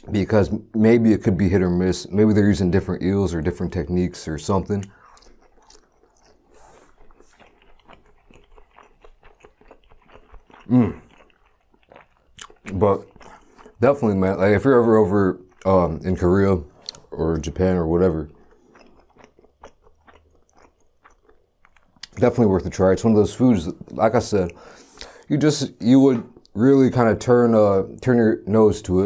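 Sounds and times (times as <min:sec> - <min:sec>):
person chewing with mouth clicks: 0:04.6 - 0:13.8, 0:15.4 - 0:17.2, 0:18.3 - 0:22.2, 0:23.7 - 0:25.3, 0:26.2 - 0:26.6.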